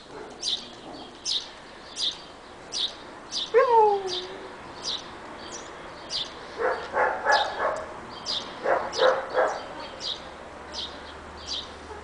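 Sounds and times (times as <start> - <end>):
bird chirping: 0.0 - 11.8.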